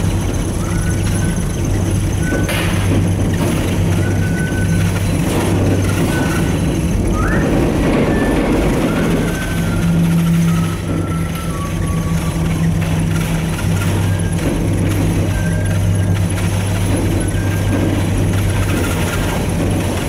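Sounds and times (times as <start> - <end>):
cable car hum and rumble: 0.0 - 20.0.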